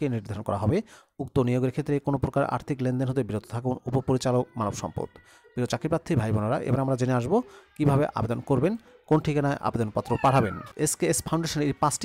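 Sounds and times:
man narrating: 0:00.0 - 0:12.0.

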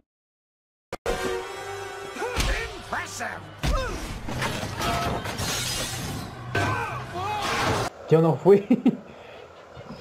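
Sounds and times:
film music: 0:01.0 - 0:07.3
glass shattering: 0:04.3 - 0:06.4.

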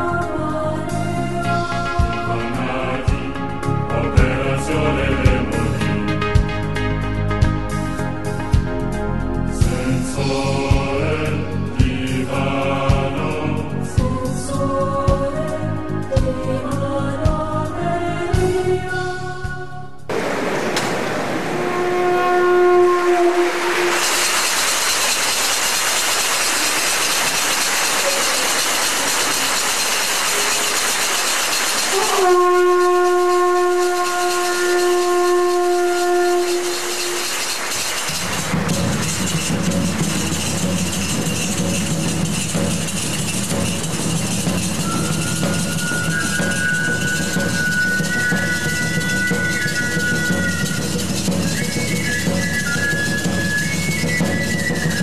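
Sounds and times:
steady hiss: 0:20.1 - 0:22.1, 0:23.0 - 0:43.1
low sustained drone: 0:20.1 - 0:40.6.

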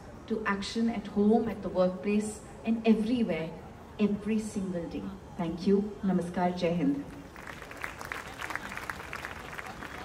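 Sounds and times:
audience applauding: 0:07.3 - 0:10.0.

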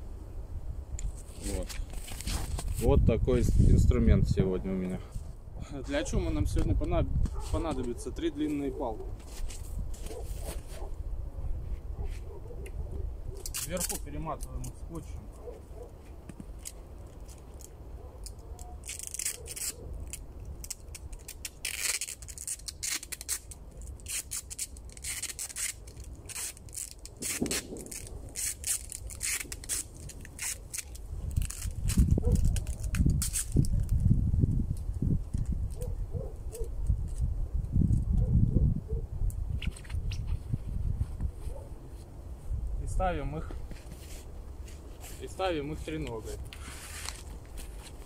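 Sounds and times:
rustling: 0:01.0 - 0:02.8, 0:07.3 - 0:11.0, 0:13.4 - 0:34.1, 0:43.4 - 0:48.0
adhesive tape ripping off roll: 0:13.4 - 0:14.8, 0:16.5 - 0:35.9, 0:36.6 - 0:38.0, 0:46.2 - 0:48.0.

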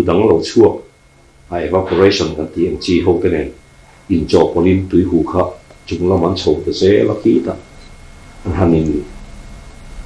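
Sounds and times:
man talking: 0:00.0 - 0:00.9, 0:01.5 - 0:07.7, 0:08.4 - 0:09.1.

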